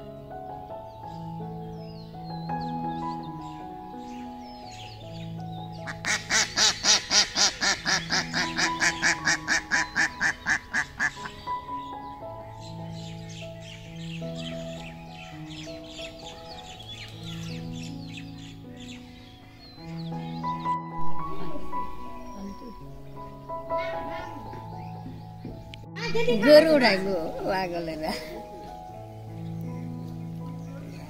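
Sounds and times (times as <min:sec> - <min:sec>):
background music with held notes: 0:00.0 - 0:31.0
duck quacking rapidly: 0:05.9 - 0:11.3.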